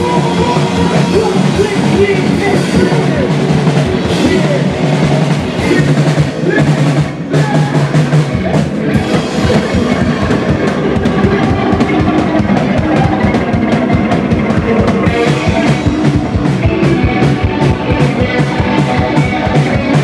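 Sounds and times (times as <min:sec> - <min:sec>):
distorted electric guitar: 0:00.0 - 0:20.0
drum kit pounding: 0:00.0 - 0:20.0
punk band playing loud: 0:00.0 - 0:20.0.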